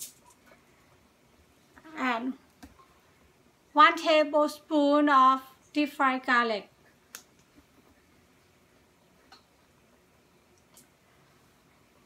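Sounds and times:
woman speaking: 1.8 - 2.4, 3.7 - 6.7.

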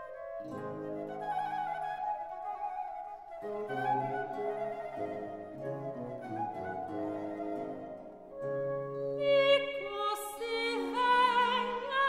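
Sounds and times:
flute melody: 0.0 - 12.0.

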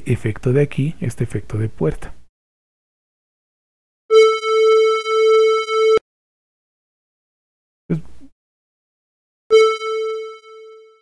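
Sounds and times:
synthesizer tone pulses: 9.5 - 11.0.

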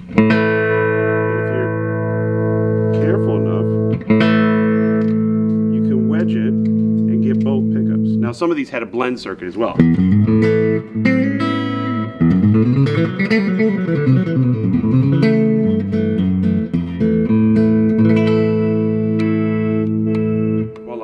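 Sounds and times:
electric guitar playing: 0.0 - 8.6, 9.5 - 21.0.

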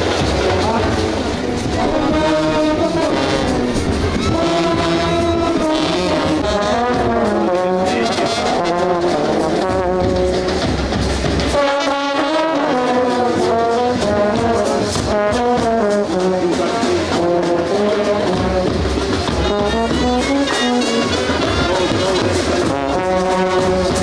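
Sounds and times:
marching brass band playing: 0.0 - 24.0.

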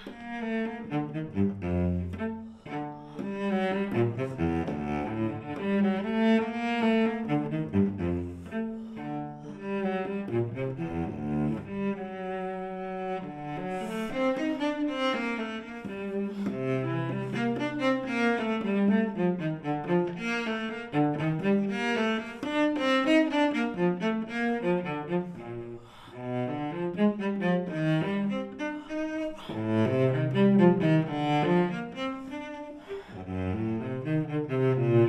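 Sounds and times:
bowed cello: 0.0 - 35.0.

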